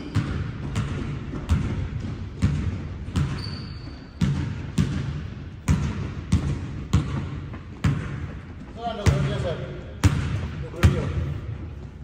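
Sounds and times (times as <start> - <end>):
basketball bouncing on hardwood: 0.0 - 9.4, 10.0 - 11.2.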